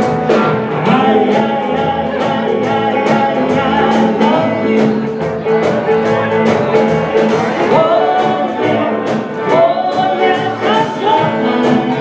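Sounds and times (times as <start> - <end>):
drums: 0.0 - 12.0
electric guitar: 0.0 - 12.0
person singing: 0.0 - 12.0.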